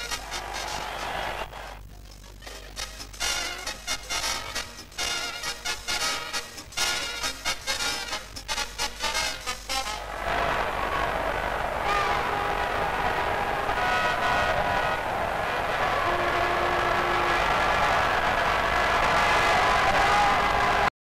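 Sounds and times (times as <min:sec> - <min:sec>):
crowd roar: 0:00.0 - 0:01.8, 0:09.8 - 0:20.9.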